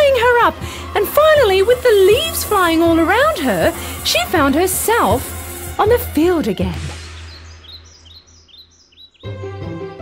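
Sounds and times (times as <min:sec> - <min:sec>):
rushing noise: 0:01.3 - 0:06.2
bird chirping: 0:06.8 - 0:09.5.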